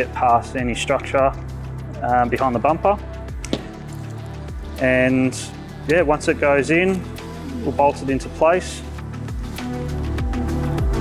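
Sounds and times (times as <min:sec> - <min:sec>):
music with low sustained notes: 0:00.0 - 0:11.0
man's voice: 0:02.0 - 0:03.0, 0:04.7 - 0:09.0.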